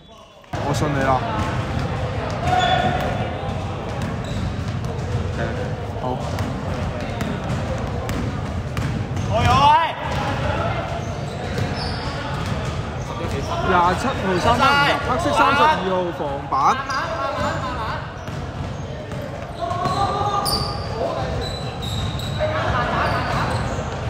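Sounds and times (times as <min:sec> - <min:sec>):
players calling out: 0:00.0 - 0:24.0
basketball bouncing on wooden floor: 0:01.3 - 0:10.3.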